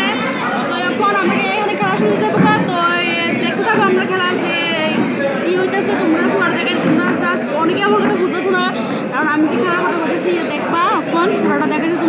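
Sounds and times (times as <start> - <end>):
crowd chatter in a hall: 0.0 - 12.0.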